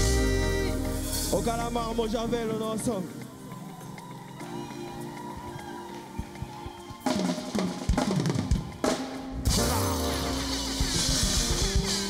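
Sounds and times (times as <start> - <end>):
full band chord: 0.0 - 2.5, 9.5 - 12.0
crashing cymbals: 9.4 - 12.0.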